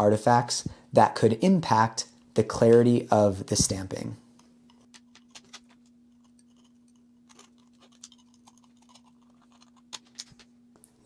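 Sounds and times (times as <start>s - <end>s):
faint steady hum: 0.0s - 11.0s
pick scratching plastic: 4.7s - 10.5s.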